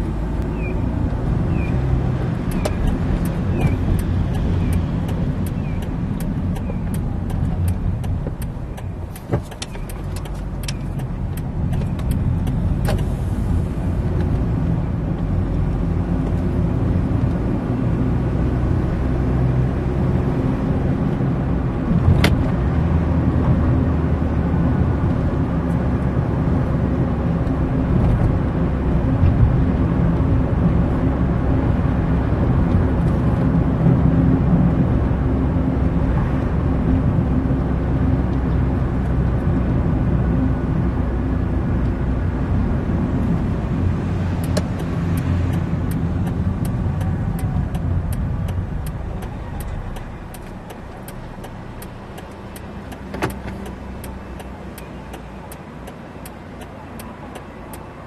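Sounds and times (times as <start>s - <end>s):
car engine and road noise: 0.0s - 58.0s
sharp clicks: 2.4s - 13.1s, 44.3s - 57.9s.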